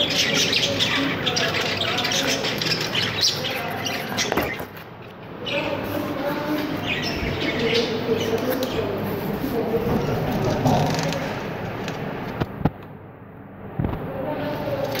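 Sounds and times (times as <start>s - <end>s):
budgerigar chicks chirping: 0.0s - 9.8s.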